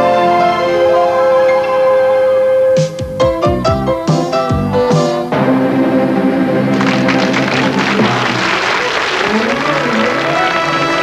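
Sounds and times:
orchestra playing: 0.0s - 2.9s, 4.9s - 11.0s
audience applauding: 6.6s - 11.0s.

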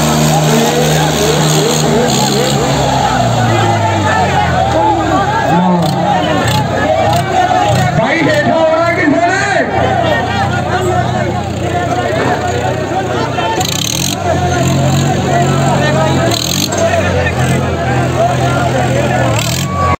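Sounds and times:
people talking and shouting: 0.0s - 20.0s
tractor engine running: 0.0s - 20.0s.

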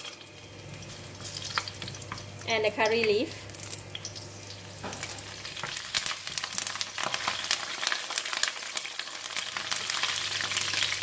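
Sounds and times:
leaves and spices sizzling in oil: 0.0s - 11.0s.

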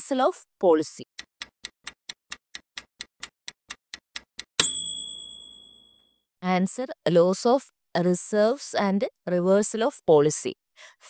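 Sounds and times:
bright ding: 4.6s - 6.1s.

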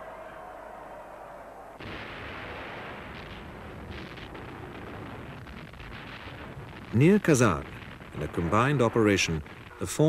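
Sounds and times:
artillery fire and explosions: 1.8s - 10.0s.

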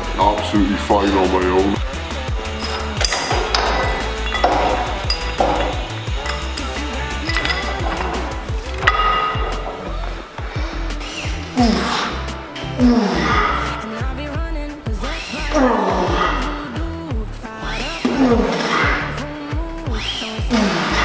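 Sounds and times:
background music with beat: 0.0s - 21.0s
metal weight plates clanking: 2.4s - 10.8s.

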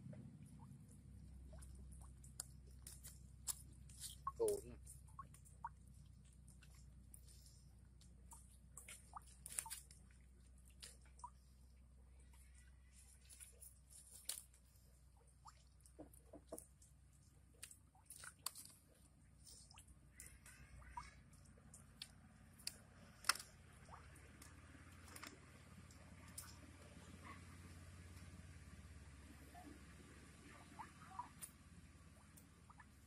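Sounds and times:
low steady hum: 0.0s - 33.0s
wet clicks and squelches: 0.8s - 11.5s, 12.2s - 27.2s, 30.5s - 33.0s.

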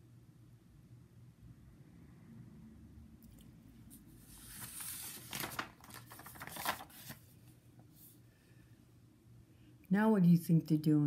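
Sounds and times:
book pages rustling: 3.9s - 8.2s
paper flaps: 4.2s - 7.3s.

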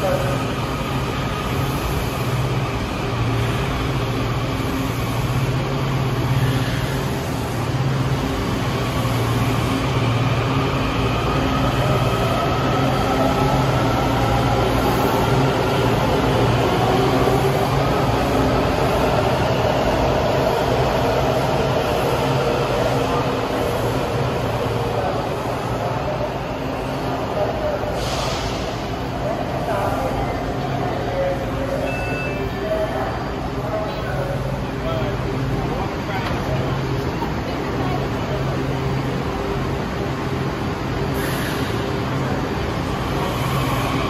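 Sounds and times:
train low hum: 0.0s - 44.0s.

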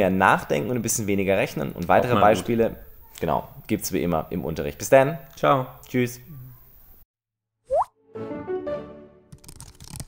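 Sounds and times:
rising bloop sound effect: 7.7s - 7.9s.

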